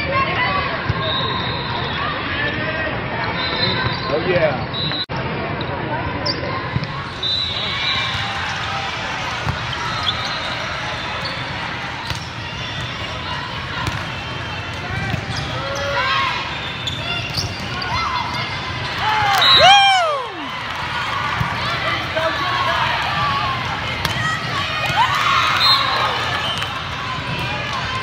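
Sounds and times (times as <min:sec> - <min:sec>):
players shouting: 0:06.6 - 0:28.0
volleyball thumps: 0:08.2 - 0:10.5, 0:11.3 - 0:15.6, 0:23.2 - 0:25.1.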